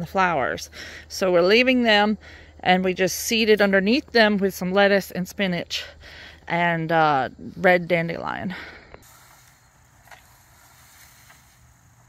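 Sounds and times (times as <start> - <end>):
rake scratching through mulch: 9.0 - 12.0.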